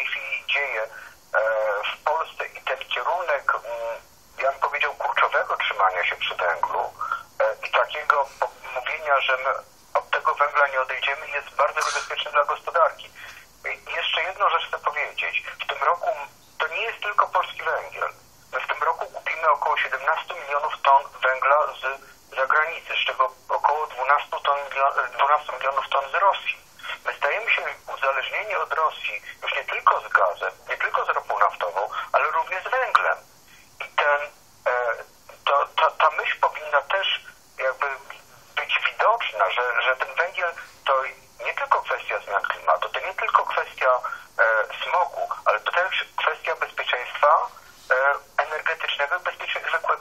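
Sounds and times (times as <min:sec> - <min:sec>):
person talking over telephone: 0:00.0 - 0:50.0.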